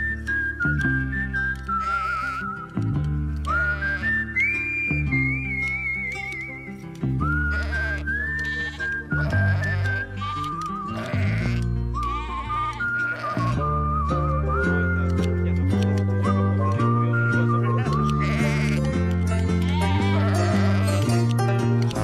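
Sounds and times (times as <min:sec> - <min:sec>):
whistled melody with vibrato: 0:00.0 - 0:22.0.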